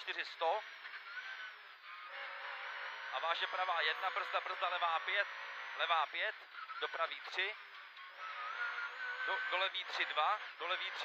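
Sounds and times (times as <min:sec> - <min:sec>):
car engine from inside cabin: 0:00.0 - 0:11.0.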